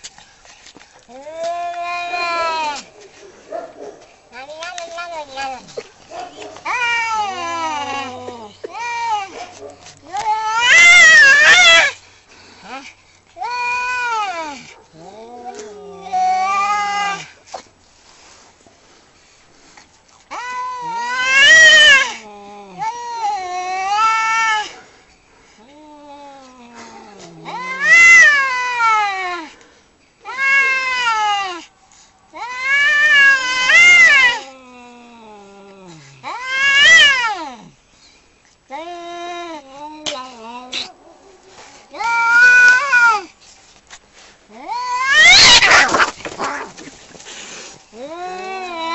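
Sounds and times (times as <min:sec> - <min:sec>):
cats yowling in a fight: 0:01.1 - 0:03.0, 0:04.3 - 0:12.0, 0:13.4 - 0:17.4, 0:20.3 - 0:24.8, 0:25.6 - 0:29.6, 0:30.2 - 0:31.7, 0:32.3 - 0:37.8, 0:38.7 - 0:43.4, 0:44.5 - 0:47.0, 0:47.9 - 0:48.9.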